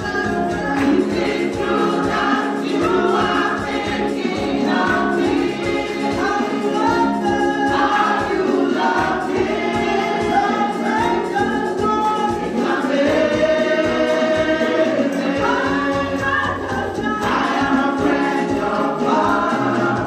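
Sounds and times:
women's vocal group singing in harmony: 0.0 - 20.0.

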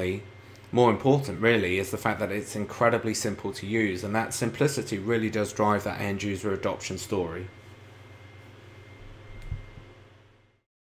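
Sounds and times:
low hum: 3.6 - 10.6.

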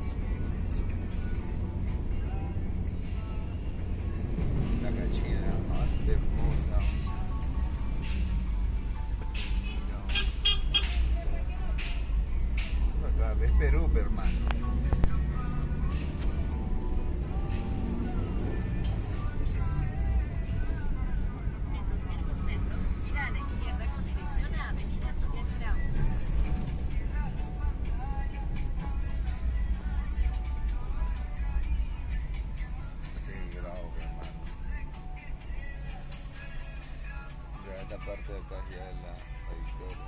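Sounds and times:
car interior rumble: 0.0 - 40.0
music playing: 0.0 - 40.0
voices: 17.2 - 27.5, 36.4 - 40.0.

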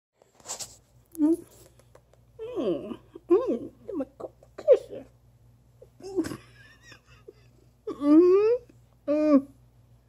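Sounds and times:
wet nose and mouth clicks: 1.5 - 2.3.

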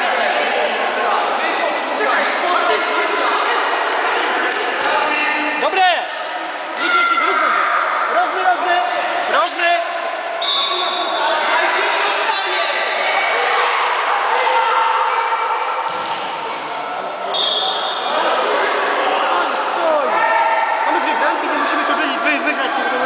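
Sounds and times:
voices shouting in a hall: 0.0 - 23.0.

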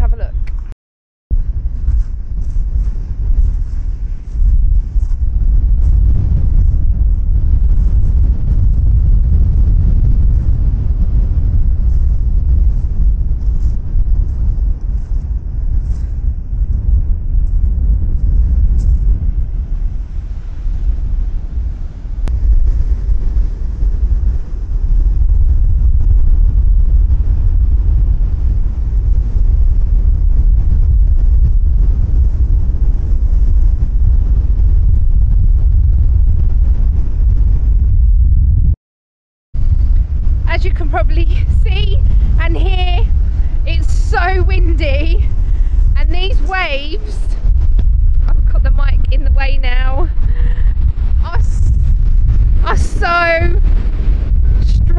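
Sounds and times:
wind buffeting a microphone: 0.0 - 38.8, 39.5 - 54.9.

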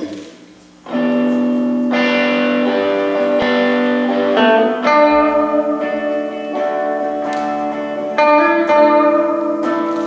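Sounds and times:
electric guitar note picked: 0.0 - 10.0
electric guitar chord ringing: 0.8 - 10.0.

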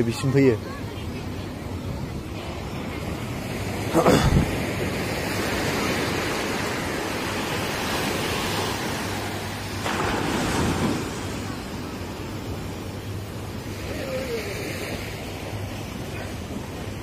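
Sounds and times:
waves breaking on beach: 0.0 - 17.0.

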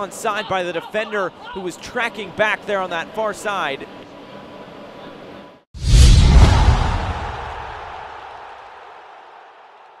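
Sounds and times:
deep booming hit: 5.8 - 8.1
whoosh: 5.8 - 8.1.

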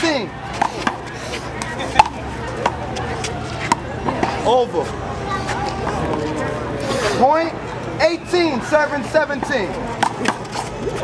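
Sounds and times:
ball slapping on concrete: 0.5 - 4.4, 9.4 - 11.0.

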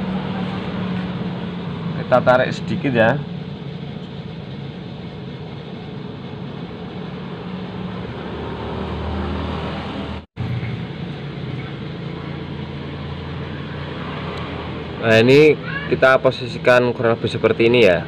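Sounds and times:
vehicle engine rumble with hiss: 0.0 - 18.0.

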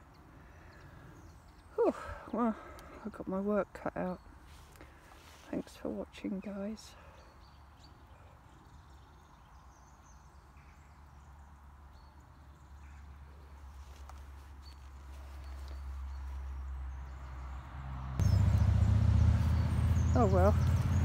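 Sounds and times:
road traffic rumble: 0.0 - 21.0
loud low rumble: 18.2 - 21.0.

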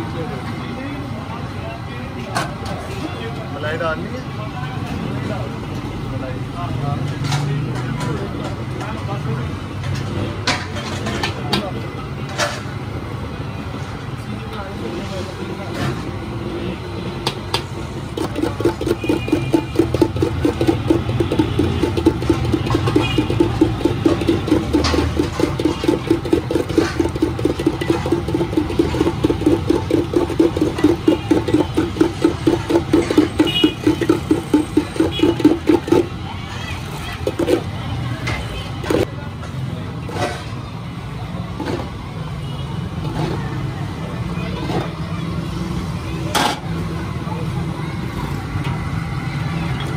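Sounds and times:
metal cup scraping ice in bowl: 18.0 - 36.2, 37.1 - 37.7.

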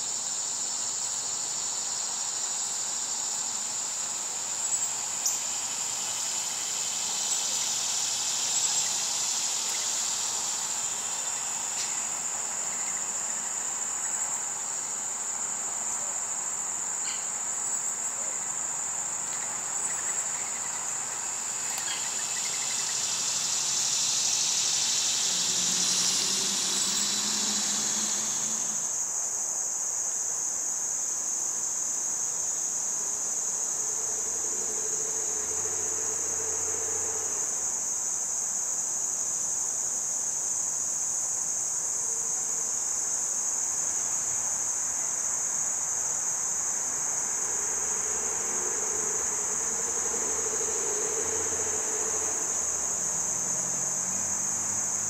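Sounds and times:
crickets trilling: 0.0 - 55.0
loud insect buzz: 0.0 - 55.0.

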